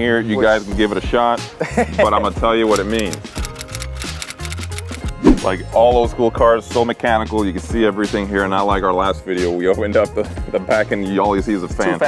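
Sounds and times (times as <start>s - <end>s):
background music with bass: 0.0s - 12.0s
keyboard typing clicks: 2.8s - 5.2s.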